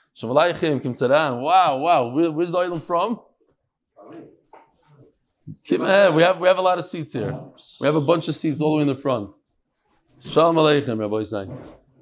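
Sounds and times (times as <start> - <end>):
man speaking into microphone: 0.2 - 3.2, 5.5 - 9.3, 10.2 - 11.8.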